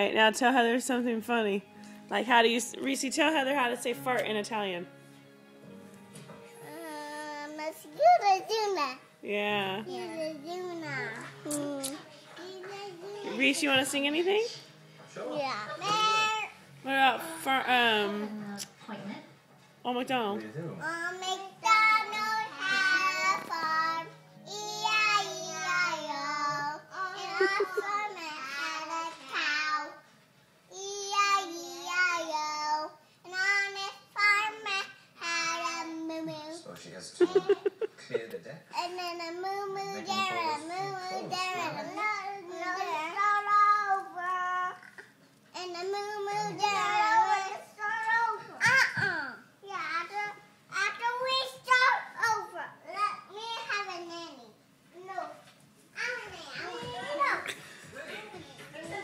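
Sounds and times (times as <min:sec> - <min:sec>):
toddlers babbling and calling: 0:06.6 - 0:09.0, 0:09.8 - 0:13.5, 0:15.4 - 0:16.6, 0:20.8 - 0:30.0, 0:38.8 - 0:55.4
girl singing unaccompanied: 0:09.8 - 0:13.4, 0:20.8 - 0:30.1, 0:30.7 - 0:36.7, 0:38.8 - 0:48.6.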